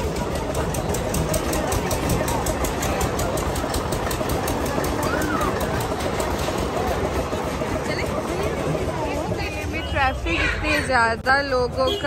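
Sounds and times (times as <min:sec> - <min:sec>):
motor running with pulsing beat: 0:00.0 - 0:09.7
faint voices: 0:00.0 - 0:12.0.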